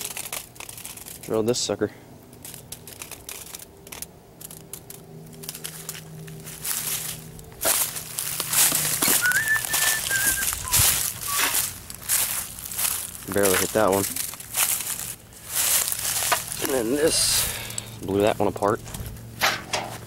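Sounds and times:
footsteps crunching dry leaves: 0:00.0 - 0:20.0
whistle-like chirps: 0:09.1 - 0:11.6.

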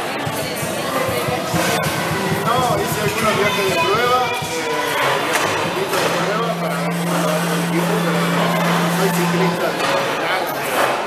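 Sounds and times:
faint distant voices chattering: 0:00.0 - 0:11.0
steady low drone: 0:00.2 - 0:10.3.

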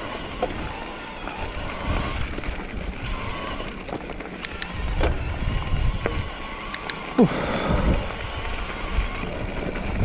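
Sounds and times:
bike clicks and rattles: 0:00.0 - 0:10.0
bike tyres rumbling on gravel: 0:00.0 - 0:10.0
wind on microphone: 0:04.6 - 0:06.4, 0:07.3 - 0:10.0.

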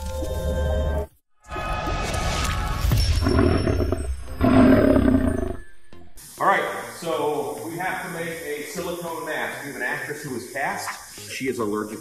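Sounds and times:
low monster roar: 0:03.2 - 0:05.6
man talking: 0:06.4 - 0:12.0.

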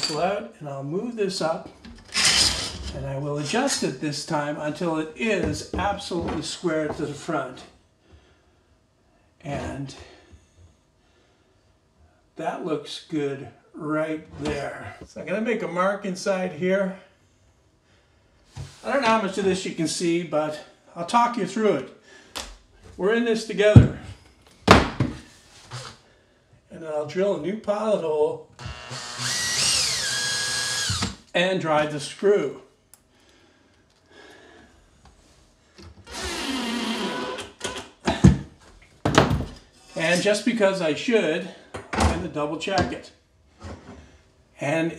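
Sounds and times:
cordless drill driving screw: 0:02.0 - 0:02.9, 0:28.6 - 0:31.2, 0:36.1 - 0:37.9
drill set down with heavy thud: 0:24.6 - 0:25.3.

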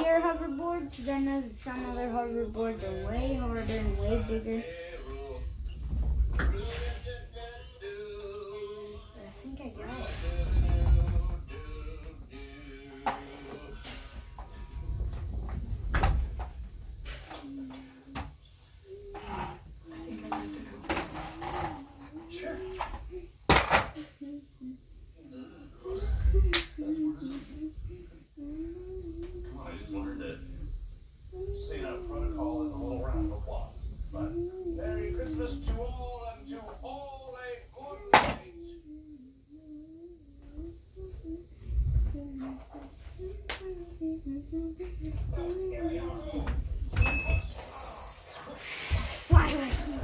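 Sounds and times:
soft hiss: 0:00.0 - 0:50.0
low thud of movement: 0:05.4 - 0:07.2, 0:09.9 - 0:12.0
child humming: 0:17.1 - 0:23.4, 0:24.0 - 0:35.8, 0:38.5 - 0:46.5
finger snap: 0:26.5 - 0:26.8, 0:43.4 - 0:43.7.

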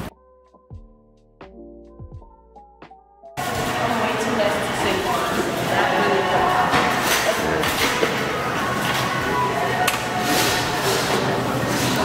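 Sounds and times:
busy store noise: 0:03.4 - 0:12.0.

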